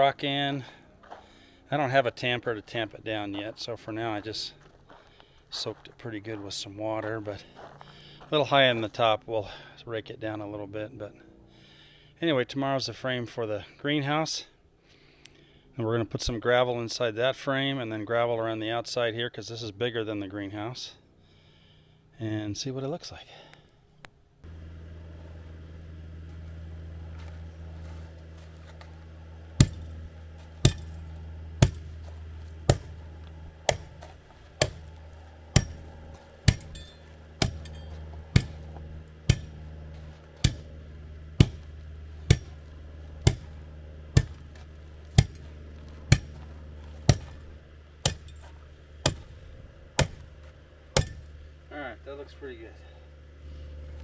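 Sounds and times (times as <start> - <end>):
hand tamper striking gravel: 26.2 - 51.6.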